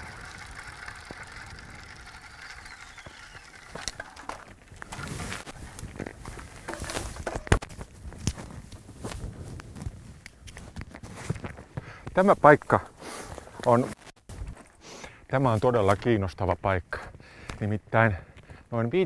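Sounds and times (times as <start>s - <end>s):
bike clicks and knocks: 0.0s - 8.5s
bicycle rolling on gravel: 0.0s - 9.5s.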